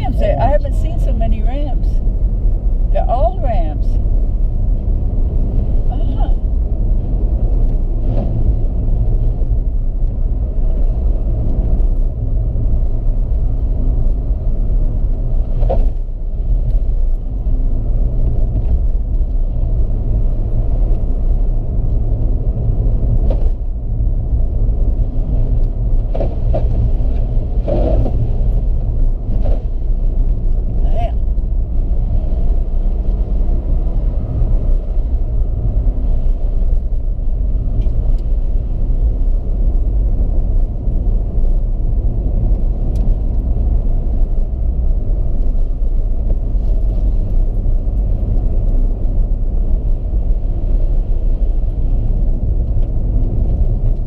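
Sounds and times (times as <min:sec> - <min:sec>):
engine and tyre rumble: 0:00.0 - 0:54.0.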